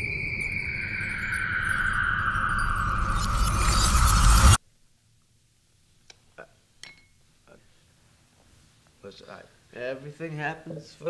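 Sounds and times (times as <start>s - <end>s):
high steady tone: 0.0s - 4.6s
low rumble: 0.0s - 4.6s
tone sliding downward: 0.0s - 4.6s.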